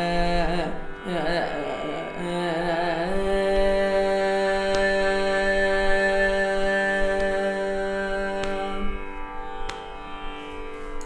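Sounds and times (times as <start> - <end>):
woman singing a long note: 0.0 - 9.0
tanpura drone: 0.0 - 11.0.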